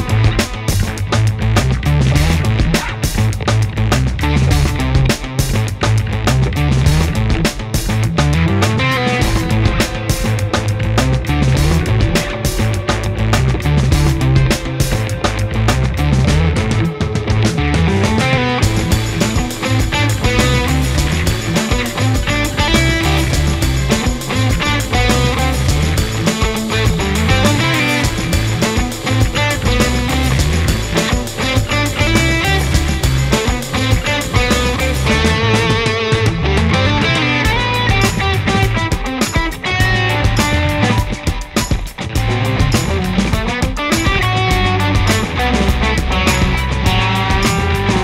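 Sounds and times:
bass guitar: 0.0s - 48.0s
distorted electric guitars: 0.0s - 48.0s
steady beat: 0.0s - 48.0s.

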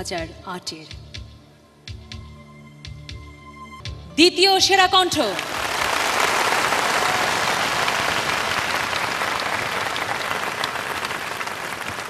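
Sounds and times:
large audience applauding: 5.2s - 12.0s.

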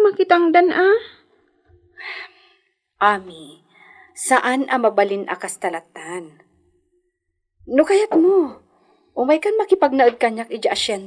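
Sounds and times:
soft breath: 3.7s - 4.2s.

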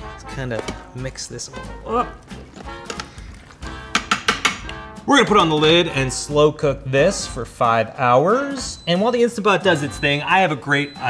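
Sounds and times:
background music: 0.0s - 11.0s
thick food being stirred: 0.4s - 3.9s.

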